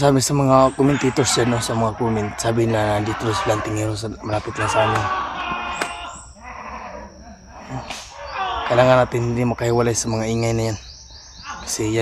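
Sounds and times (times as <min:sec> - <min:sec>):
faint wavering animal call: 0:00.0 - 0:12.0.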